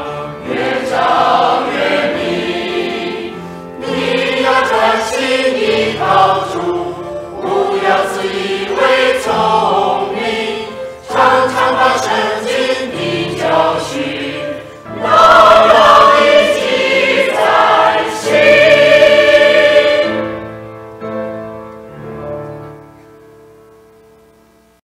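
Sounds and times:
mixed choir singing hymn: 0:00.0 - 0:20.6.

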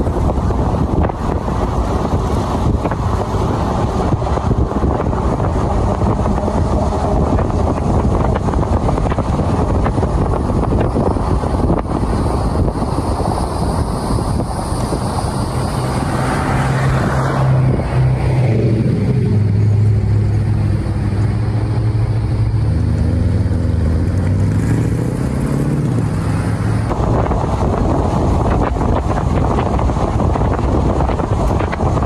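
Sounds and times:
low steady engine drone: 0:00.0 - 0:32.0
wind and tyre rush: 0:00.0 - 0:32.0.

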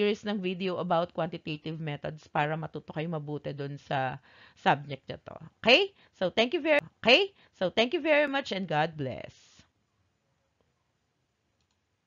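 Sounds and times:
faint click: 0:11.6 - 0:11.8.

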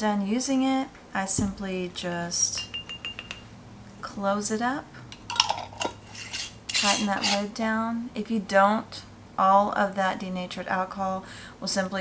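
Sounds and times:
lid scraping on jar threads: 0:05.1 - 0:07.5
metal lid clinking on glass jar: 0:05.2 - 0:07.4.

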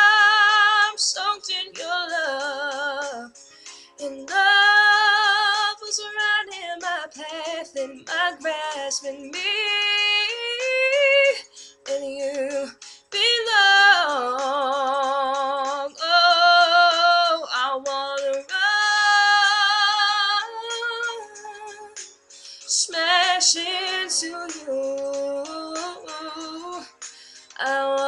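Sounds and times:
woman singing ballad: 0:00.0 - 0:03.3, 0:04.0 - 0:22.0, 0:22.7 - 0:28.0.

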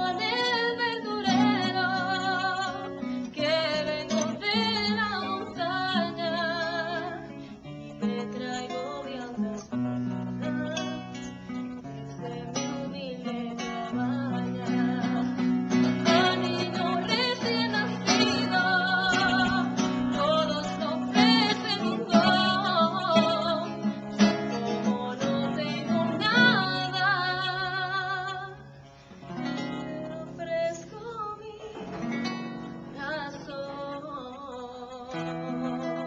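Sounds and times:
woman singing with vibrato: 0:00.0 - 0:28.8, 0:29.4 - 0:36.0
classical acoustic guitar: 0:00.0 - 0:36.0.

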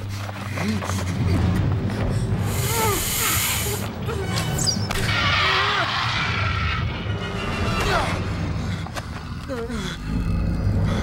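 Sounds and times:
dramatic film music: 0:00.0 - 0:11.0.

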